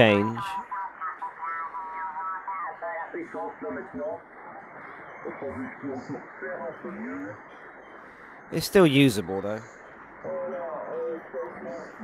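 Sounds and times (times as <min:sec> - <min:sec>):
band-limited radio speech: 0:00.0 - 0:12.0
steady radio hiss: 0:00.0 - 0:12.0.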